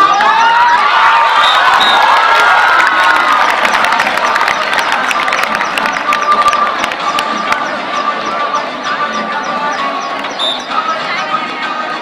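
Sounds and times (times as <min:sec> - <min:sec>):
children cheering and shouting: 0:00.0 - 0:05.7.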